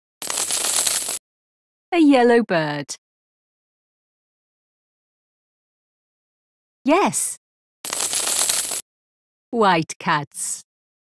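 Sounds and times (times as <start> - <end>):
coin jingle sound effect: 0.2 - 1.2, 7.8 - 8.8.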